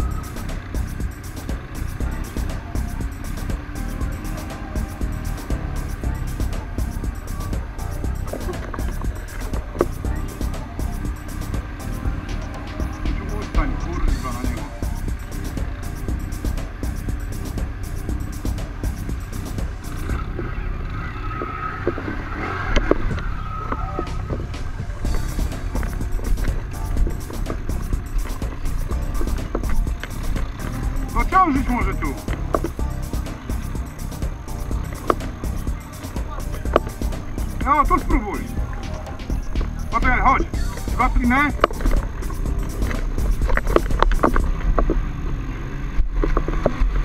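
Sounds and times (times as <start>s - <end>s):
quad engines rumbling in mud: 0.0s - 47.0s.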